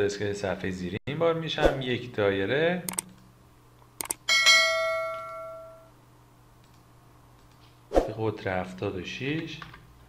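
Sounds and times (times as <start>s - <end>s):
quick clicks: 2.9s - 3.3s, 4.0s - 4.2s
bell ding: 4.3s - 5.9s.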